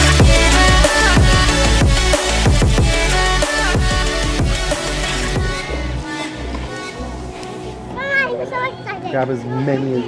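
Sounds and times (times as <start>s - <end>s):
pulsing bass: 0.0s - 6.0s.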